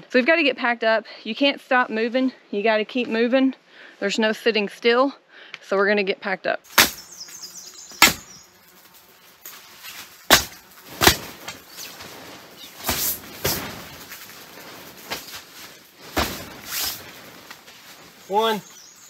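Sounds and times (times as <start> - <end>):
slaps on tent fabric: 8.0 - 8.3, 10.3 - 14.3, 15.0 - 17.7.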